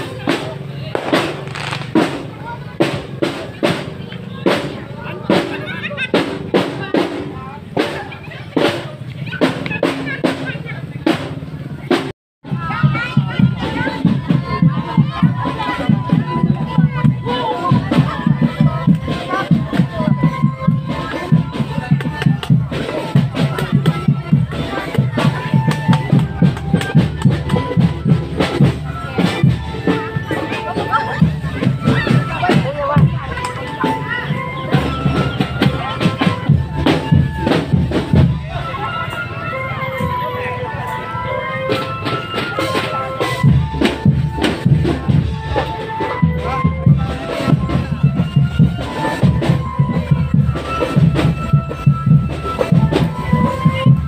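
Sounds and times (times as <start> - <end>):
crowd voices: 0.0 - 54.0
marching drum band: 0.0 - 54.0
held melody notes: 12.5 - 54.0.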